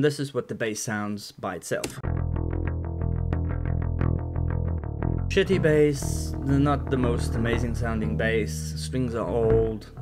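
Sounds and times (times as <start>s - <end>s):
electric bass picked notes: 2.0s - 10.0s.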